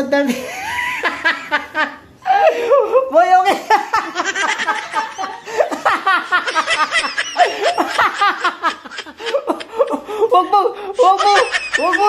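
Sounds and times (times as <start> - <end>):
people laughing: 0.3 - 10.3, 11.0 - 12.0.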